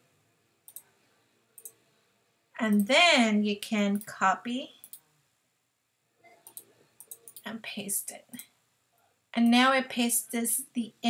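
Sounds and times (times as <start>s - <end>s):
faint computer mouse clicks: 0.7s - 0.9s.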